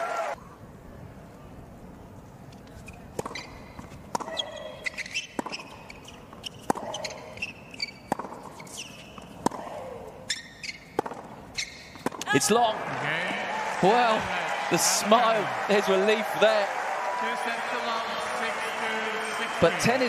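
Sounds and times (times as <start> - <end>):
tennis ball hit with rackets: 3.1 - 10.0, 10.9 - 12.3.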